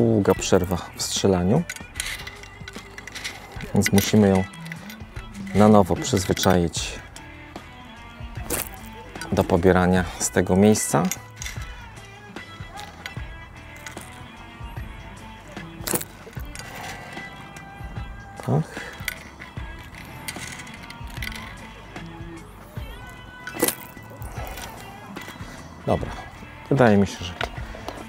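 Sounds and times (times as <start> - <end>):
background music: 0.0 - 28.0.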